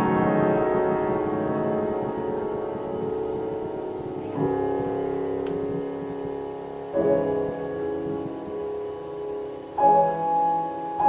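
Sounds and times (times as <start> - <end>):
grand piano chords: 0.0 - 11.0.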